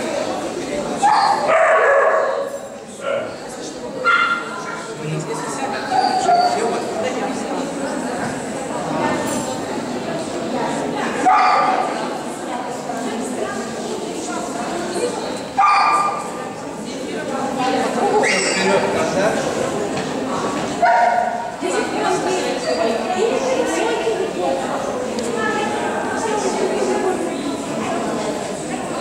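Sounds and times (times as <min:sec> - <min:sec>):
background chatter: 0:00.0 - 0:29.0
small dog yipping: 0:05.9 - 0:06.7, 0:18.2 - 0:18.8.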